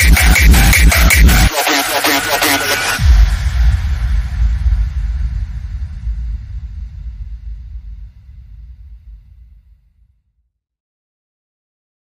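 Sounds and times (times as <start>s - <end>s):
deep bass rumble: 2.9s - 10.1s.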